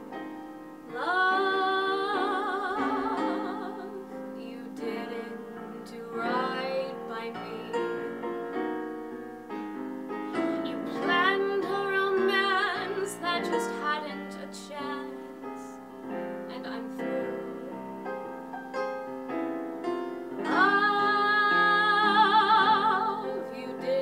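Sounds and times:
piano accompaniment: 0.0s - 24.0s
woman singing a slow ballad: 0.9s - 8.2s, 10.4s - 15.8s, 16.5s - 17.9s, 20.4s - 24.0s.

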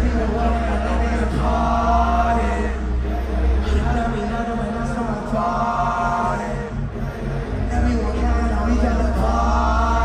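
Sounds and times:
heavy bass: 0.0s - 10.0s
voices singing: 0.0s - 10.0s.

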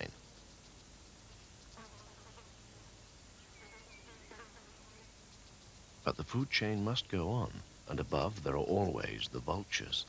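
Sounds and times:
faint insects: 0.0s - 10.0s
low hiss: 0.0s - 10.0s.

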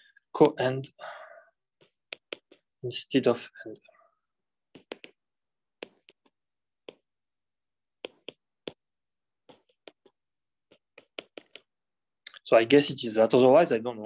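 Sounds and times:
stylus tapping on glass screen: 1.8s - 2.7s, 4.7s - 5.2s, 5.8s - 7.2s, 8.0s - 11.7s.

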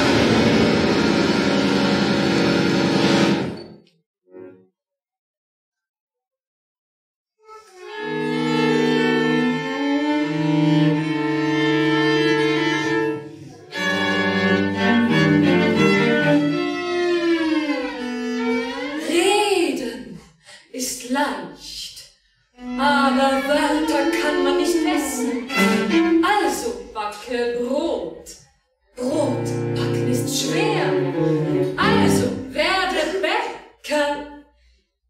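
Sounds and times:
bowed string sliding note: 0.0s - 3.6s
chamber ensemble holding a chord: 29.0s - 32.6s.

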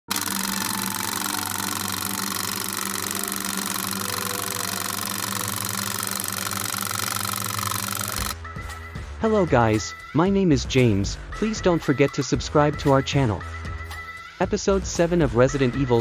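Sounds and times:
film projector clatter: 0.0s - 8.4s.

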